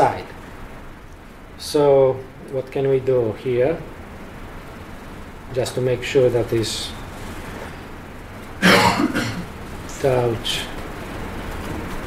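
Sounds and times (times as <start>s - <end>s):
man coughing: 8.6s - 9.5s.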